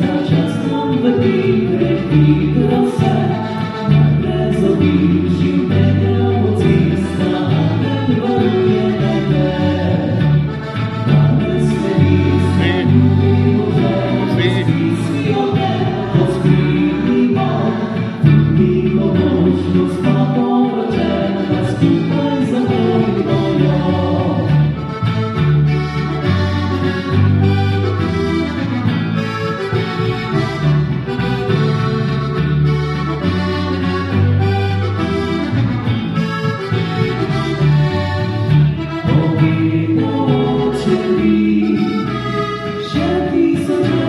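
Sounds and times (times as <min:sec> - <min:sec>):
woman and man singing: 0:00.0 - 0:10.4, 0:11.0 - 0:24.7, 0:39.0 - 0:44.0
accordion: 0:00.0 - 0:44.0
double bass: 0:00.0 - 0:44.0
guitar: 0:00.0 - 0:44.0.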